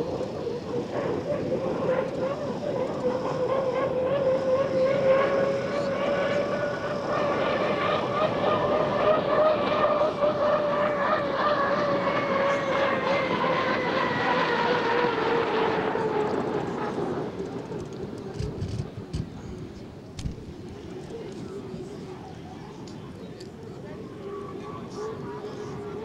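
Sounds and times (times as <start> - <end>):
turbine engine whining: 0.0 - 26.0.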